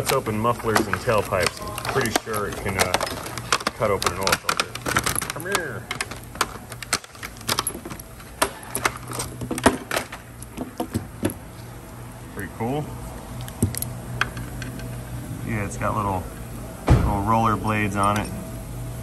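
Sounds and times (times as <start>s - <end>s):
plastic blister pack crackling: 0.0s - 7.4s.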